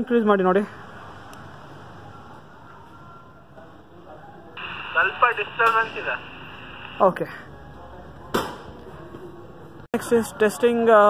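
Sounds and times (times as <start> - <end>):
walkie-talkie click: 5.0 - 5.9.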